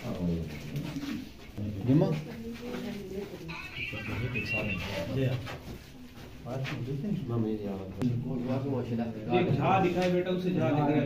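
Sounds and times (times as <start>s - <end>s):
men murmuring and talking: 0.0s - 11.0s.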